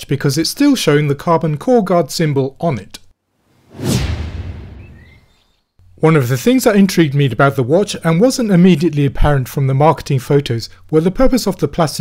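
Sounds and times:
whoosh transition effect: 0:03.5 - 0:05.5.

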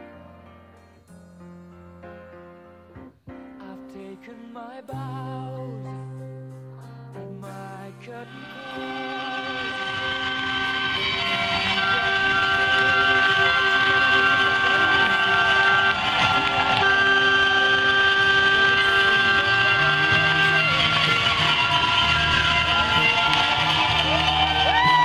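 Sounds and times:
arena horn chord blasts: 0:08.2 - 0:25.0
crowd cheering: 0:08.3 - 0:25.0.

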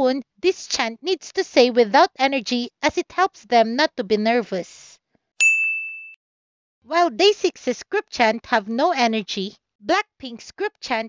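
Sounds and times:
bright bell-like ding: 0:05.4 - 0:06.2.

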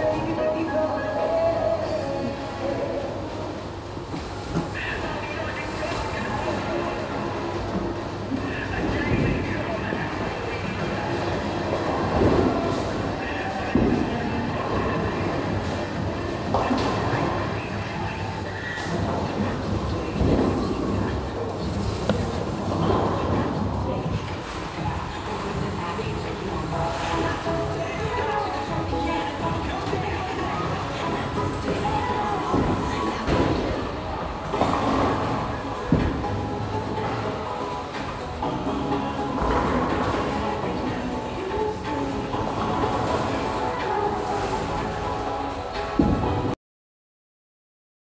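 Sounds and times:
background music: 0:00.0 - 0:46.6
bowling balls rolling: 0:05.8 - 0:46.5
bowling pins clattering: 0:08.8 - 0:17.5, 0:18.9 - 0:41.2.

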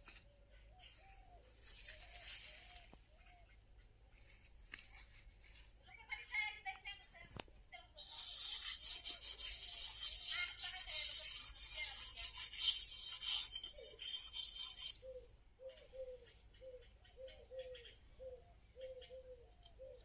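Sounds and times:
metal wok being scrubbed: 0:08.0 - 0:14.9.

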